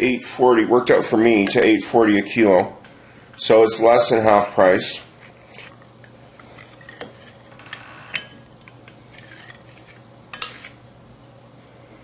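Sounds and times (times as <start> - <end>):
spoon stirring in oil: 5.0 - 10.8.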